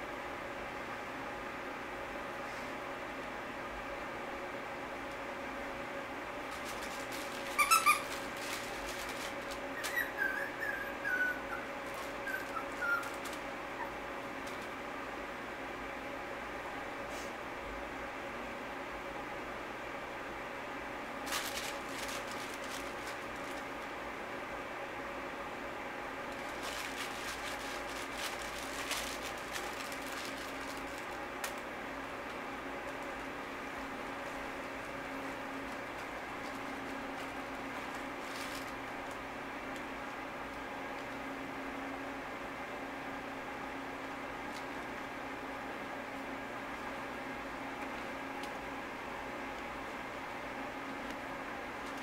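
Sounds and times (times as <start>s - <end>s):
faint steady hum: 0.0s - 52.0s
puppies squeaking: 7.4s - 8.2s, 9.7s - 14.0s
puppies whimpering: 9.8s - 14.0s.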